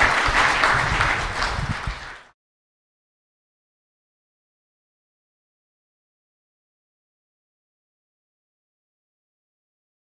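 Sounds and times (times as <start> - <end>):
audience applauding: 0.0 - 2.4.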